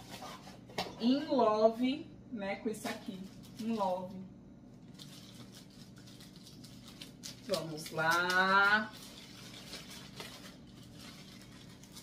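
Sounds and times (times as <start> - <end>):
plastic wrapping rustling: 2.9 - 4.1, 4.8 - 12.0.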